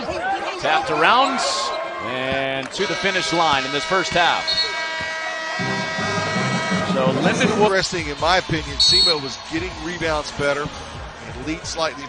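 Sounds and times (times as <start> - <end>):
arena horn blast: 2.8 - 9.4
music: 5.6 - 12.0.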